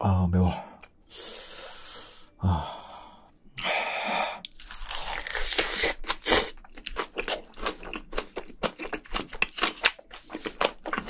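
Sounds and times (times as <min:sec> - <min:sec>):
close chewing: 0:04.4 - 0:11.0.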